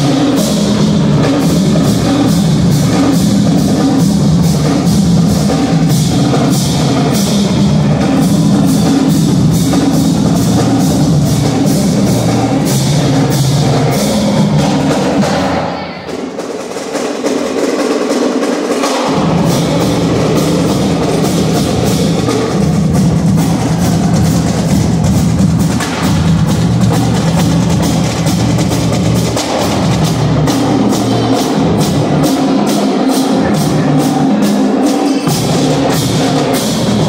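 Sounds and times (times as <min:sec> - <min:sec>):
marching bass drums and snares: 0:00.0 - 0:15.6, 0:16.2 - 0:37.0
marching band brass: 0:00.0 - 0:37.0.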